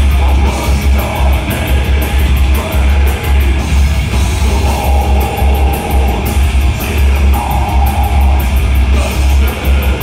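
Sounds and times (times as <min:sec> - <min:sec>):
live metal band playing: 0:00.0 - 0:10.0.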